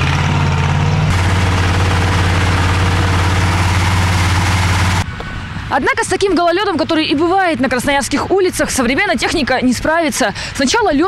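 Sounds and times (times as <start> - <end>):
cleaning machine engine humming: 0.0 - 5.0.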